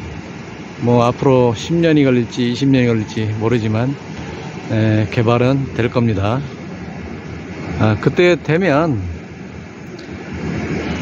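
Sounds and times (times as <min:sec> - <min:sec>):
outdoor rumble and hiss: 0:00.0 - 0:11.0.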